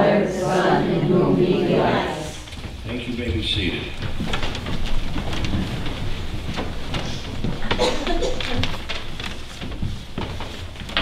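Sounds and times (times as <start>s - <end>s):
rustling and shuffling: 1.7s - 11.0s.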